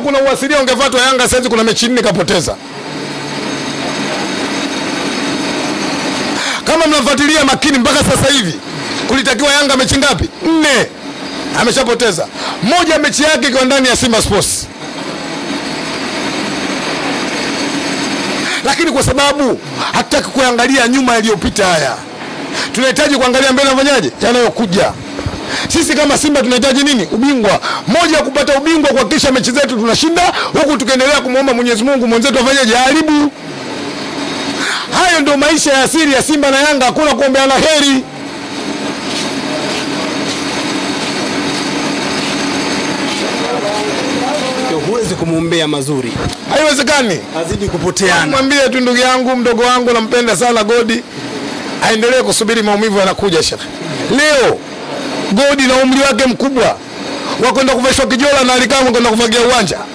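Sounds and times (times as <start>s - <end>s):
motor running with low hum: 0.4s - 59.9s.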